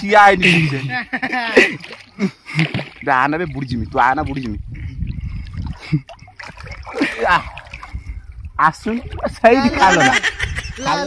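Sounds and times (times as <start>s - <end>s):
water splashing around swimmer: 0.5s - 8.2s
person speaking: 8.7s - 11.0s.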